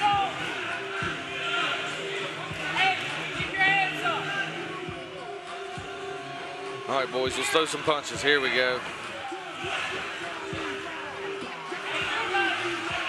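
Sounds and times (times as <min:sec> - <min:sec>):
voices shouting in a hall: 0:00.0 - 0:13.0.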